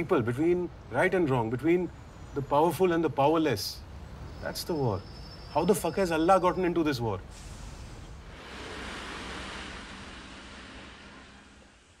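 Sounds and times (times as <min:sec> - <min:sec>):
rushing noise: 0:07.3 - 0:12.0.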